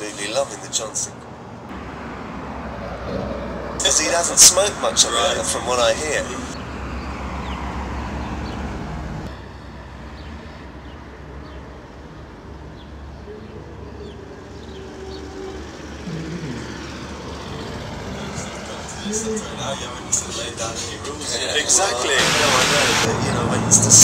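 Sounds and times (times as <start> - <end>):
street traffic rumble: 0.0 - 24.0.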